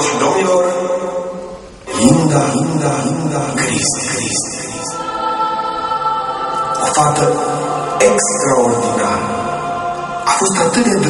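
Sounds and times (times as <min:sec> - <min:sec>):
choir-like chord of voices: 0:00.0 - 0:11.0.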